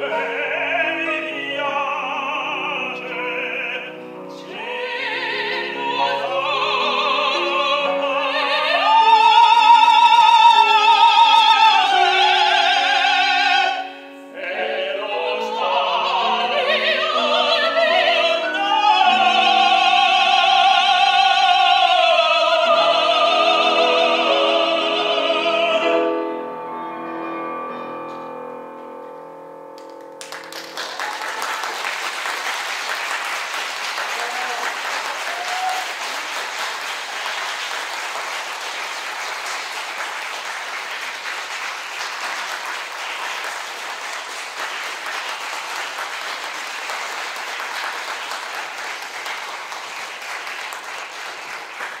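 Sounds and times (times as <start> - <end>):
opera duet with piano: 0.0 - 52.0
audience applause: 30.2 - 52.0.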